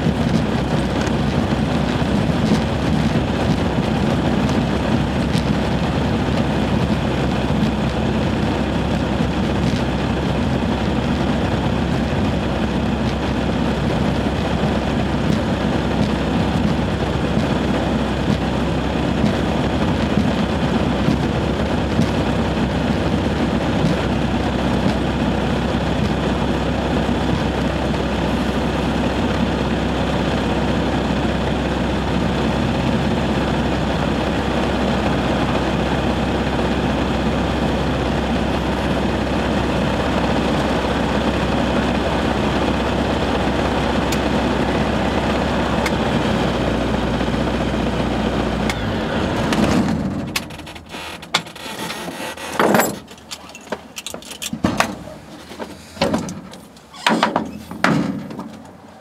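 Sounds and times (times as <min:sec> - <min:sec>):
propeller aircraft engine running: 0:00.0 - 0:57.0.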